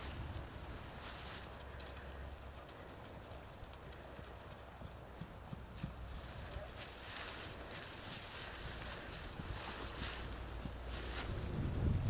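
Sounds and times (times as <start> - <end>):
horse hoofbeats on grass: 0.0 - 12.0.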